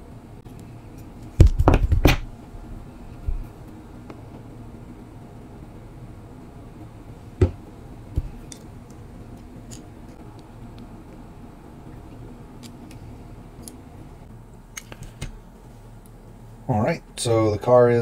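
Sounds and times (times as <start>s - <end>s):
faint steady low hum: 0.0s - 18.0s.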